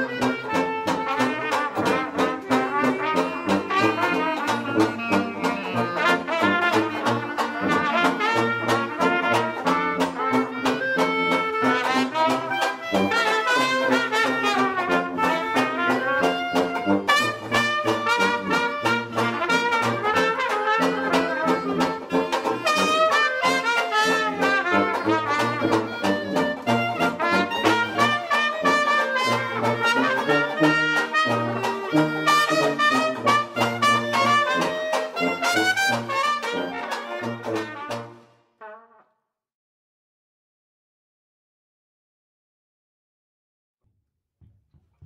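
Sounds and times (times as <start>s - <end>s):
strummed banjo chords: 0.0s - 38.2s
jazz band playing: 0.0s - 38.3s
tuba bass notes: 0.0s - 39.0s.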